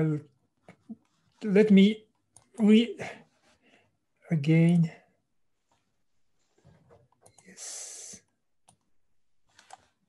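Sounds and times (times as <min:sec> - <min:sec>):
computer mouse clicks: 0:07.0 - 0:07.6, 0:08.6 - 0:08.9, 0:09.5 - 0:10.0.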